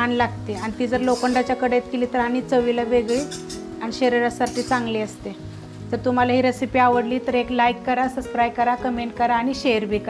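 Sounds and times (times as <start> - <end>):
spinach sizzling while stirred: 0.0 - 9.0
background music with melodic line: 0.0 - 10.0.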